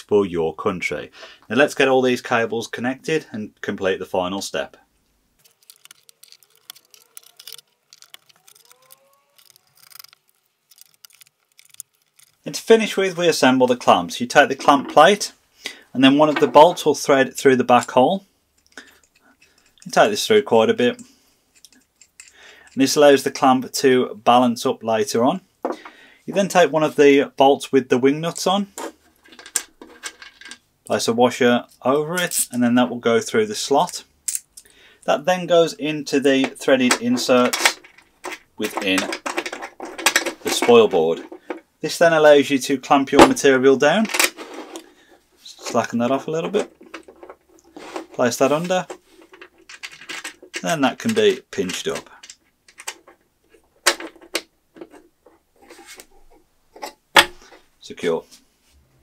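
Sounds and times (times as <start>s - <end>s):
metal washers clicking: 5.4s - 12.5s, 21.5s - 22.8s, 33.8s - 34.7s.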